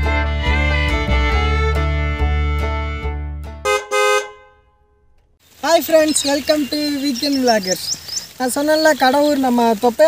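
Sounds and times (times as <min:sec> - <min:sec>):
cartoon car horn honks: 0:03.6 - 0:04.9.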